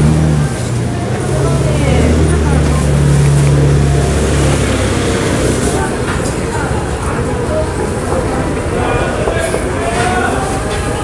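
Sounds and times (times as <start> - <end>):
voices of passers-by: 0.0 - 11.0.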